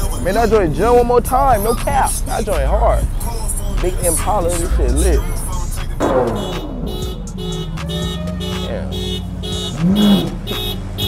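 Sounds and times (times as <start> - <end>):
low drone of passing cars: 0.0 - 11.0.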